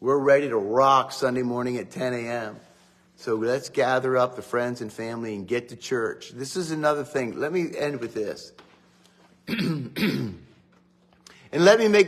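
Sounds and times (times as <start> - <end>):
man clearing his throat: 9.4 - 10.7.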